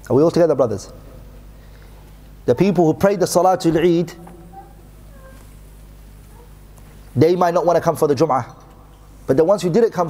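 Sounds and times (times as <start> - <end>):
low room hum: 0.0 - 10.0
faint pitched sound: 2.6 - 5.7.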